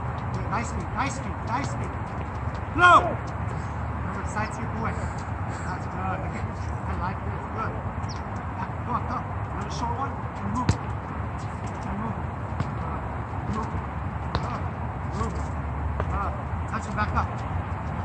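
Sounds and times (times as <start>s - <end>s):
soccer ball dribbling taps: 0.0s - 6.1s, 7.9s - 18.0s
sharp ball kick: 10.6s - 10.9s, 12.5s - 12.9s, 14.3s - 14.7s.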